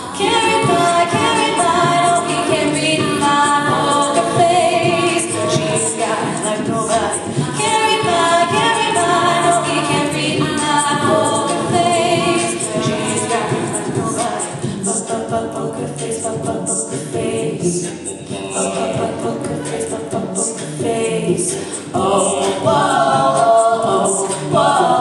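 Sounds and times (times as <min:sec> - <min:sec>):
backing vocal harmonies: 0:00.0 - 0:25.0
woman singing lead vocal: 0:00.0 - 0:25.0.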